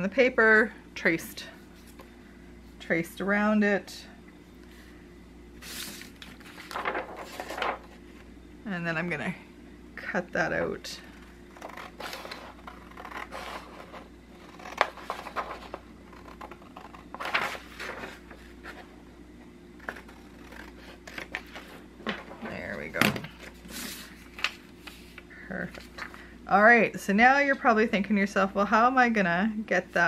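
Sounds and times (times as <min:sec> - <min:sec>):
paper rustling: 0:05.6 - 0:08.0, 0:14.6 - 0:18.9, 0:19.8 - 0:26.1
scissors cutting paper: 0:11.6 - 0:17.5, 0:19.8 - 0:21.6.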